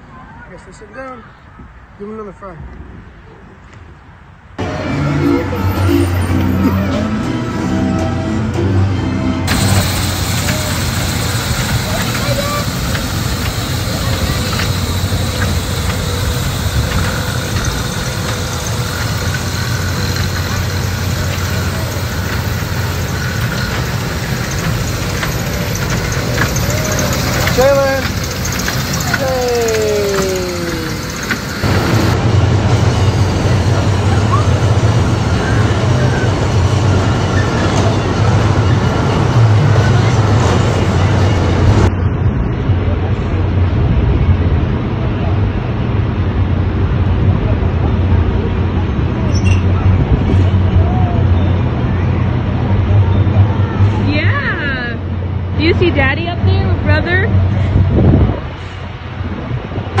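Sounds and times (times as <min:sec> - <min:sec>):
amusement park music: 0:04.6 - 0:41.9
voices: 0:09.5 - 0:32.2, 0:50.6 - 0:57.6.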